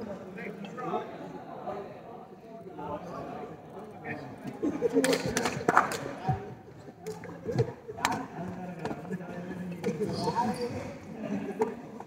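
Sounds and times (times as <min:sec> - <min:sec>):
shoe squeaks: 0:10.0 - 0:11.0.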